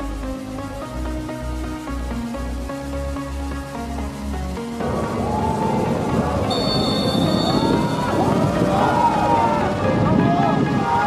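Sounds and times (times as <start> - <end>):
background music: 0.0 - 11.0
referee's whistle: 6.5 - 8.2.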